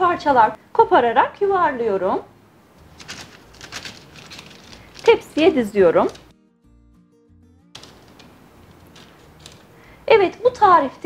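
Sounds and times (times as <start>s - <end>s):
low steady hiss: 0.0s - 6.3s, 7.8s - 11.0s.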